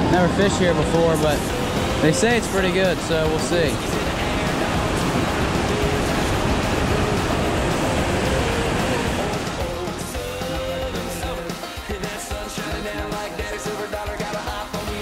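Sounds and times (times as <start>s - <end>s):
water rushing over a dam: 0.0s - 9.9s
pop-country song with guitar: 0.0s - 15.0s.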